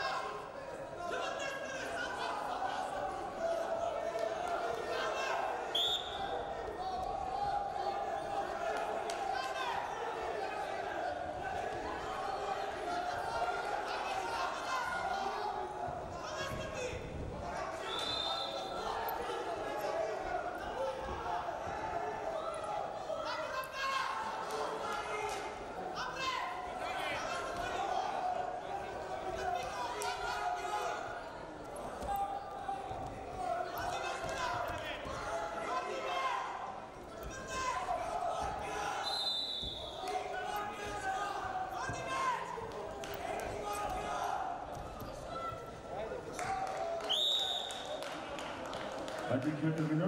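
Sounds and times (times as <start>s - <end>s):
referee's whistle: 5.7s - 6.3s, 17.8s - 18.8s, 39.0s - 40.0s, 47.1s - 47.9s.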